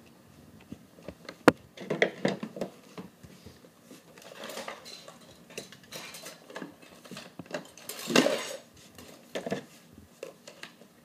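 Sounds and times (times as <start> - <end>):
hard items clattering in plastic case: 4.2 - 9.7.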